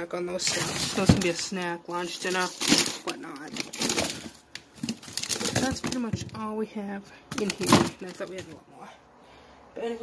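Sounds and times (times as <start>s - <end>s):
rustling and handling noise: 0.2s - 8.6s.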